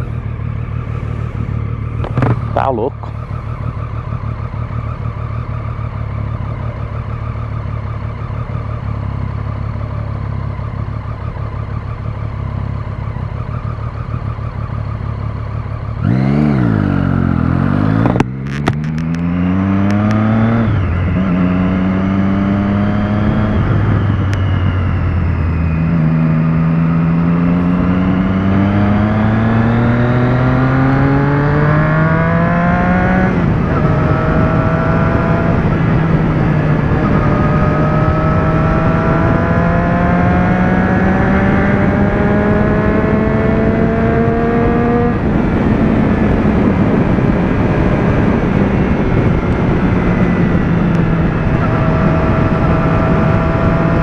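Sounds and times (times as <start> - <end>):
low drone: 0.0 - 7.3
motorcycle engine accelerating: 0.0 - 54.0.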